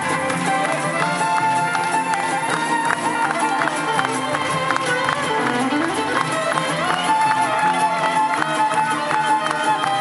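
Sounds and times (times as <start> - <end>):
acoustic guitars: 0.0 - 10.0
banjo: 0.0 - 10.0
bass: 0.0 - 10.0
fiddle: 0.0 - 10.0.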